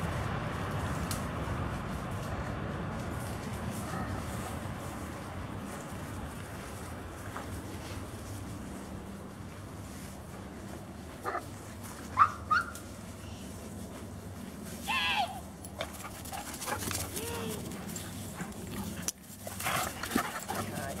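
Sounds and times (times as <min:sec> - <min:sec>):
dogs barking and yipping: 0:11.2 - 0:12.8.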